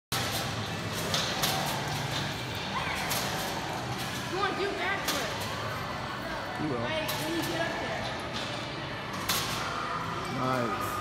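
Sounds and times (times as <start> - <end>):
indoor hall hum: 0.1 - 11.0.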